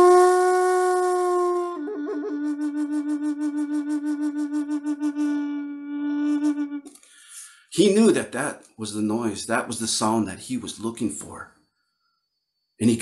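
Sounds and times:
wooden flute playing: 0:00.0 - 0:06.9.

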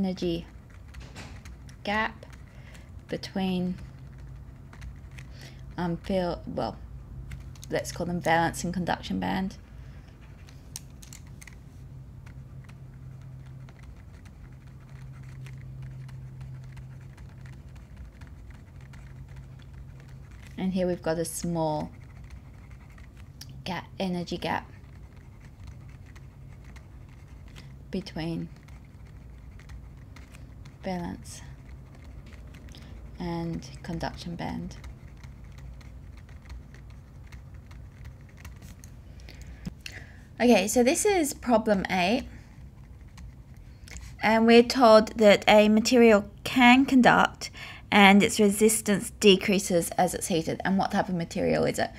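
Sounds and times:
steady low hum: 0:00.0 - 0:51.9.

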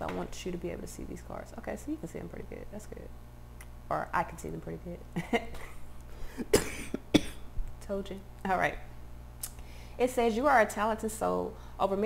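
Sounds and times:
woman coughing: 0:06.4 - 0:07.5.

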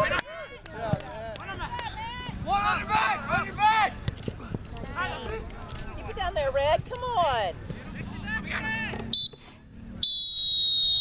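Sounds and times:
referee's whistle blasts: 0:09.1 - 0:09.4, 0:10.0 - 0:11.0.

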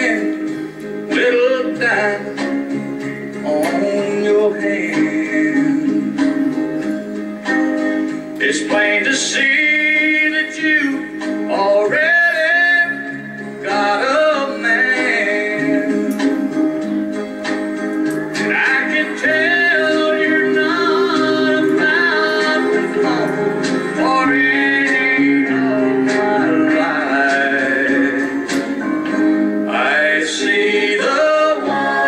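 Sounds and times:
man singing country song: 0:00.0 - 0:00.5, 0:01.1 - 0:02.7, 0:03.4 - 0:06.6, 0:08.4 - 0:16.3, 0:18.4 - 0:28.5
backing music with held chords: 0:00.0 - 0:32.0.

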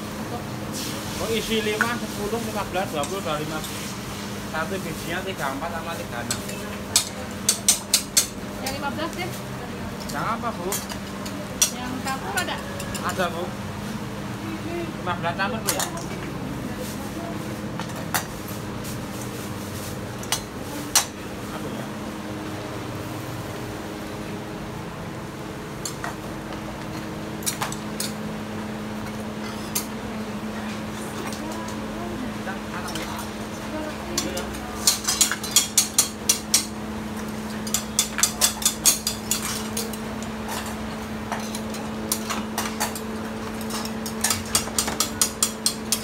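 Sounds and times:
mechanical hum and hiss: 0:00.0 - 0:46.0
utensils tapping against pans: 0:02.6 - 0:03.8, 0:05.0 - 0:09.2, 0:10.0 - 0:13.3, 0:20.2 - 0:21.2, 0:25.8 - 0:28.3, 0:32.7 - 0:46.0.

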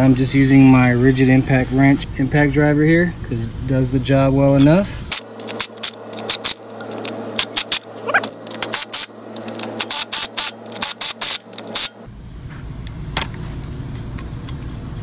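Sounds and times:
impact driver hammering: 0:05.1 - 0:12.1.

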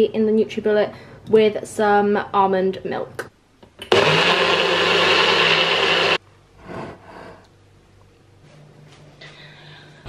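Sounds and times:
blender running: 0:03.8 - 0:06.2.

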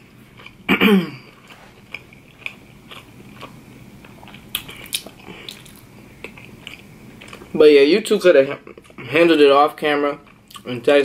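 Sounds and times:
chewing sushi: 0:00.2 - 0:00.7, 0:01.4 - 0:07.5.

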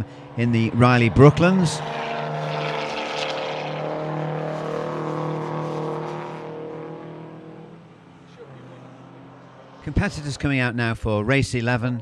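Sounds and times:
racing car engine: 0:00.0 - 0:11.2.

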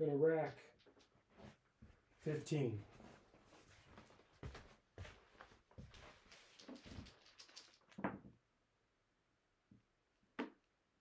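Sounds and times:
casino chips clicking: 0:06.6 - 0:07.9.

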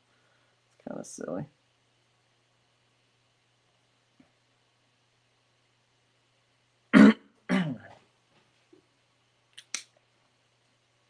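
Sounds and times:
man clearing his throat: 0:07.0 - 0:07.9.

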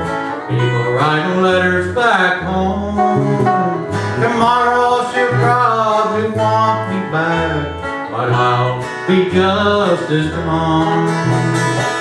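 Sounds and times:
electric bass walking: 0:00.0 - 0:12.0
guitars strumming: 0:00.0 - 0:12.0
sliding lead guitar line: 0:00.0 - 0:12.0.

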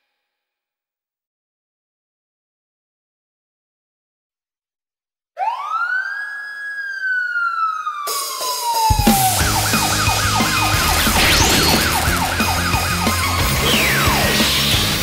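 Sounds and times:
cartoon siren wail: 0:05.4 - 0:14.4
song with heavy beat: 0:08.2 - 0:15.0.

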